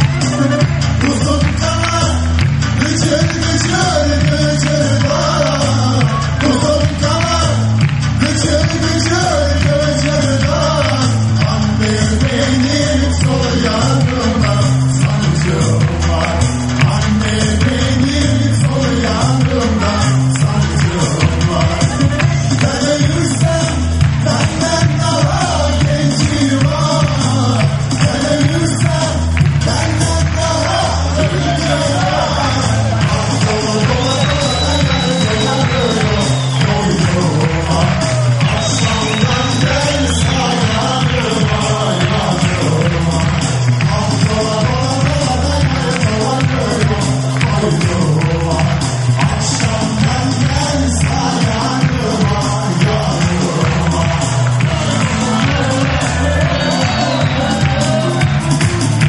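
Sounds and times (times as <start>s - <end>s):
live band music: 0.0s - 59.0s
man singing: 0.0s - 59.0s.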